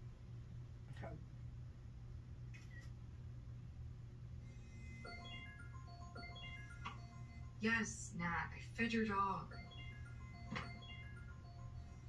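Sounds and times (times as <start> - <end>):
low steady hum: 0.0 - 12.0
slow soft film melody: 4.6 - 7.8, 9.5 - 12.0.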